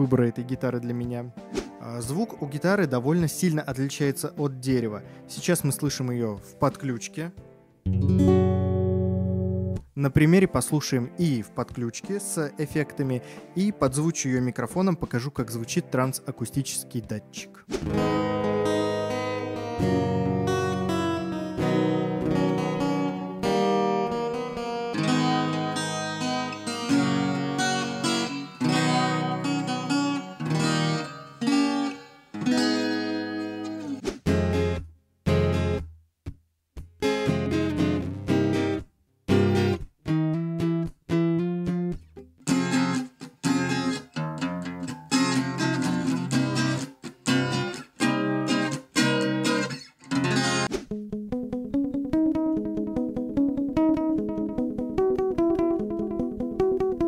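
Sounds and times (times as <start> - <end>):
acoustic guitar strumming and picking: 7.4 - 9.9, 17.8 - 35.9, 36.8 - 57.0.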